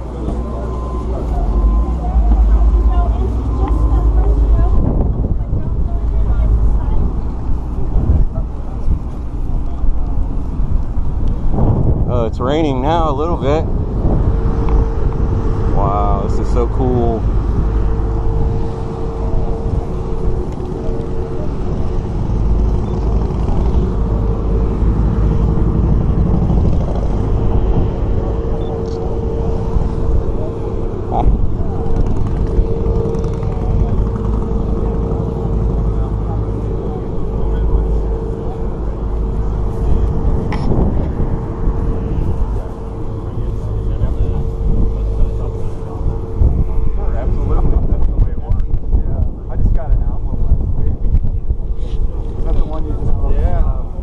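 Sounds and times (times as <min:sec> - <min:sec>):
indistinct voices: 0:00.0 - 0:54.0
steady mid-pitched hum: 0:00.0 - 0:54.0
wind buffeting microphone: 0:00.0 - 0:54.0.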